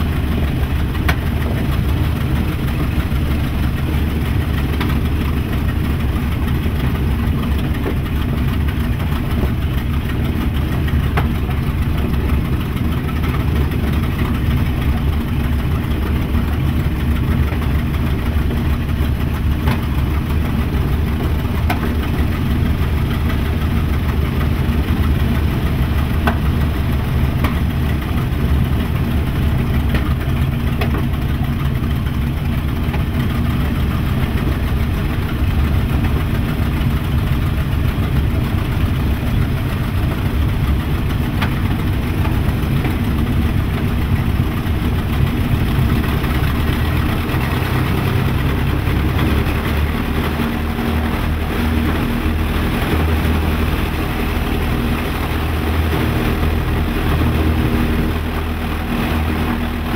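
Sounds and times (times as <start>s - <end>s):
aircraft engines running: 0.0s - 59.9s.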